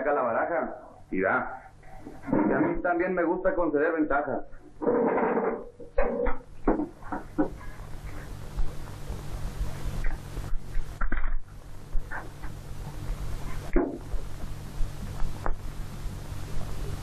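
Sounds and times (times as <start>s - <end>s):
old film soundtrack hum and hiss: 0.0s - 17.0s
short knocks and scrapes: 4.8s - 7.8s.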